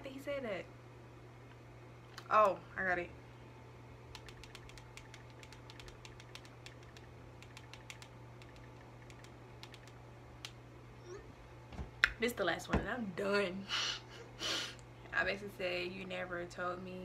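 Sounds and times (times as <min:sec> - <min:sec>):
faint steady low hum: 0:00.0 - 0:17.0
tapping on touchscreen keyboard: 0:04.2 - 0:09.9.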